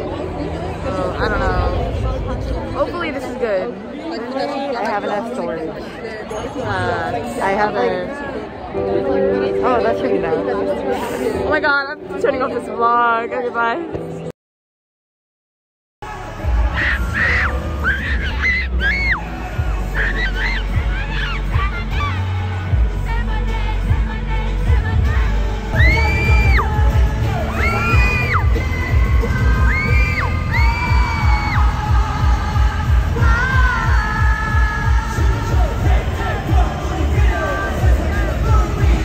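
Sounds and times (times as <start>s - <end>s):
live pop music with bass beat: 16.0s - 39.0s
person singing: 19.0s - 39.0s.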